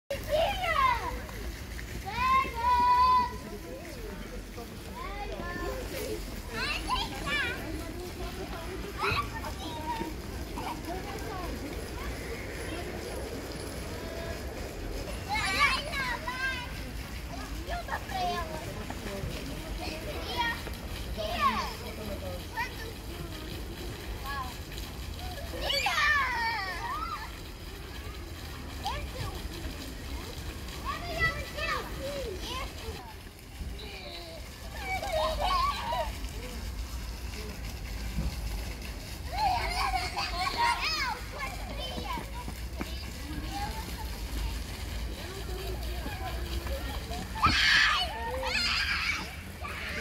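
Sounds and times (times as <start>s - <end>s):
children playing and calling out: 0.1s - 50.0s
fountain splashing: 0.1s - 50.0s
low city rumble: 0.1s - 50.0s
girls calling out and crying: 45.4s - 50.0s.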